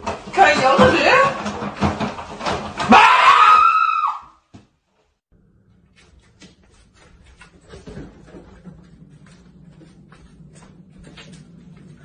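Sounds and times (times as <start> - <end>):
person screaming: 2.9 - 4.3.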